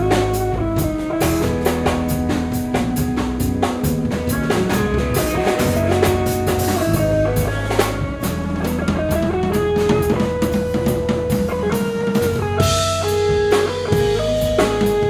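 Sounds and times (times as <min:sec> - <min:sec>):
drum kit with cymbals: 0:00.0 - 0:15.0
electric guitars playing a riff: 0:00.0 - 0:15.0
lead guitar held notes: 0:00.0 - 0:15.0.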